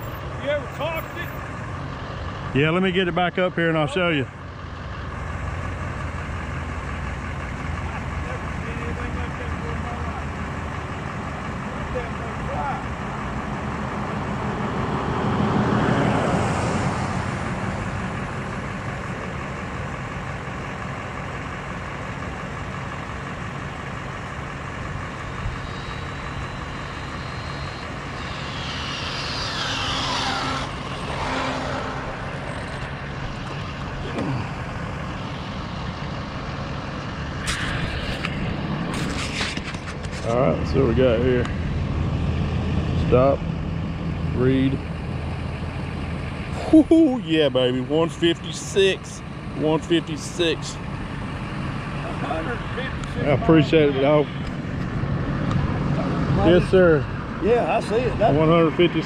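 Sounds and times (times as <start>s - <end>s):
outdoor rumble: 0.0s - 59.0s
rc car motor whining past: 25.2s - 39.4s.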